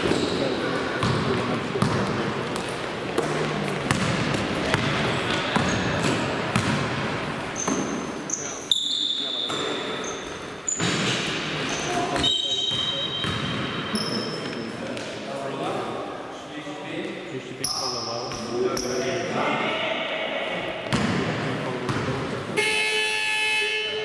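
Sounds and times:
basketball bouncing on gym floor: 0.0s - 8.1s, 10.7s - 13.8s, 20.8s - 22.2s
players' voices: 0.0s - 24.0s.

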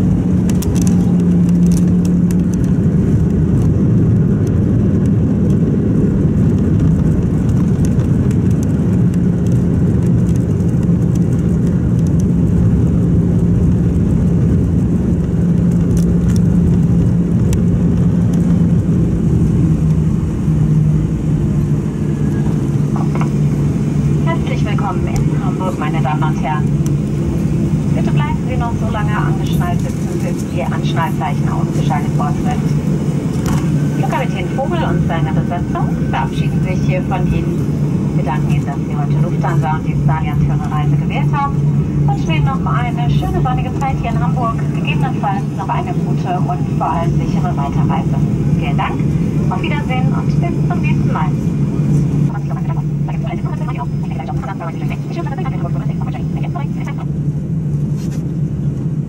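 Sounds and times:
airplane cabin rumble: 0.0s - 59.0s
jet engines humming at idle: 0.0s - 59.0s.

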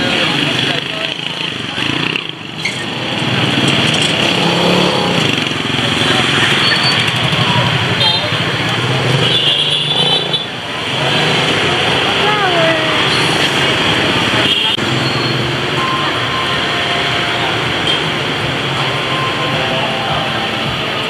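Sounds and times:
motorbike engines passing: 0.0s - 21.0s
voices talking: 0.0s - 21.0s.

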